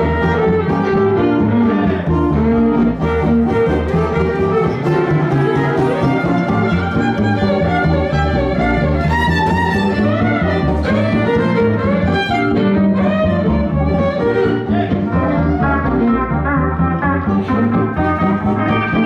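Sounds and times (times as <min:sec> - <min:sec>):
sliding fiddle notes: 0:00.0 - 0:19.0
western swing band playing: 0:00.0 - 0:19.0.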